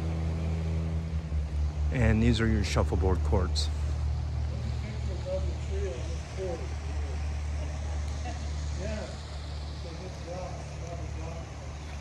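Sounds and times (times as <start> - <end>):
faint distant voices: 1.9 - 12.0.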